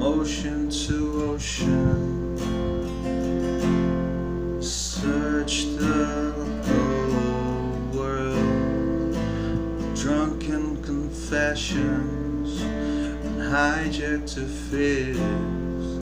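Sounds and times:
man singing: 0.0 - 3.2, 4.0 - 16.0
acoustic guitar strumming: 0.0 - 16.0.

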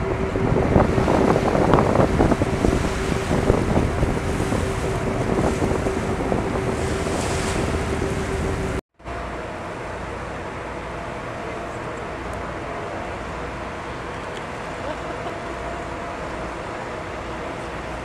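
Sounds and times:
wind buffeting microphone: 0.0 - 8.8
steady hum: 0.0 - 18.0
waves washing: 0.0 - 18.0.

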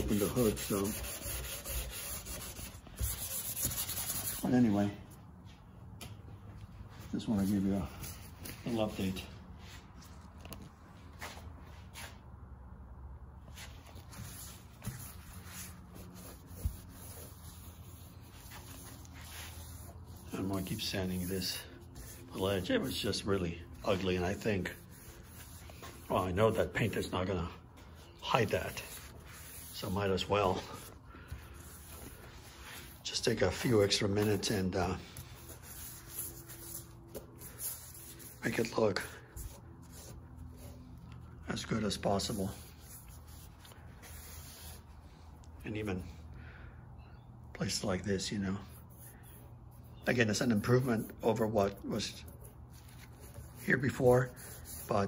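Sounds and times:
wet sandpaper rubbing: 0.0 - 4.6, 14.2 - 27.3, 31.5 - 38.8, 48.7 - 55.0.

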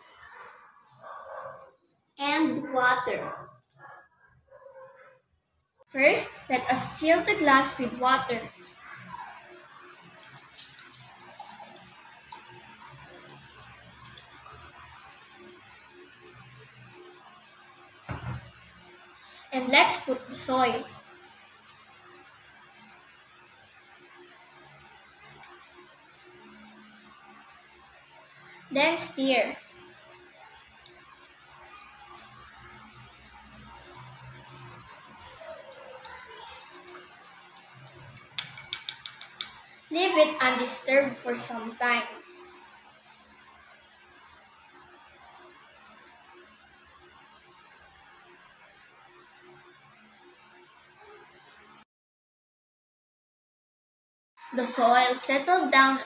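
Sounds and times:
water pouring into a glass: 6.2 - 40.8.

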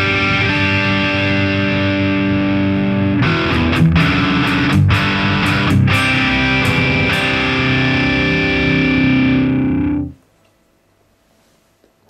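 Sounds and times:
distorted electric guitar chord ringing: 0.0 - 10.2.

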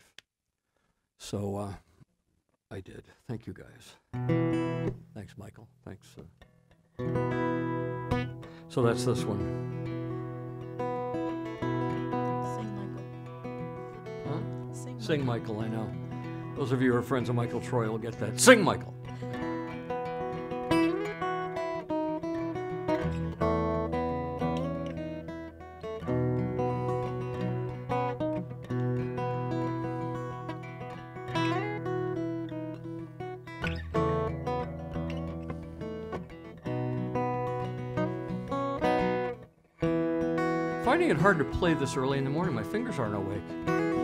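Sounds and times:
fingerpicked acoustic guitar: 4.1 - 5.2, 6.4 - 44.0.

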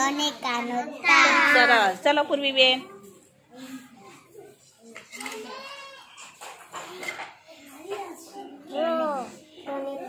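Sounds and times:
children's voices: 0.0 - 1.9, 3.0 - 10.0.

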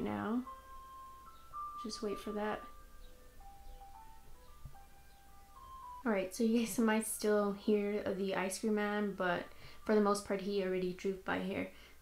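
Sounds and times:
ice cream truck chime melody: 0.0 - 6.4.

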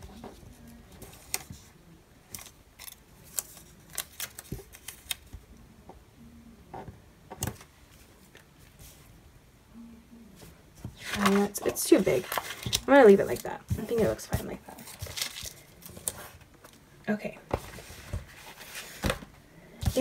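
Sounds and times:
paper sticker clicks and rustles: 2.3 - 5.4.

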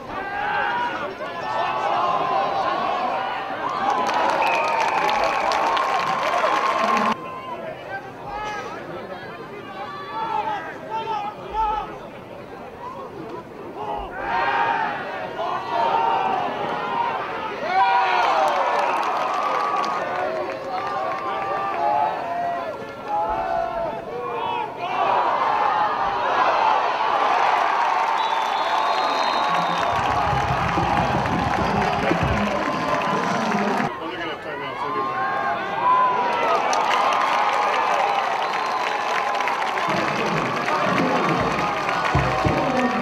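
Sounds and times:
crowd cheering and shouting: 0.0 - 8.8, 13.7 - 43.0.

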